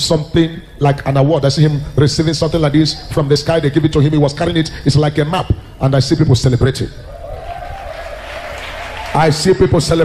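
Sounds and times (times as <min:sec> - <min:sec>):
audience applauding and cheering: 0:07.1 - 0:10.0
preacher speaking: 0:09.1 - 0:10.0.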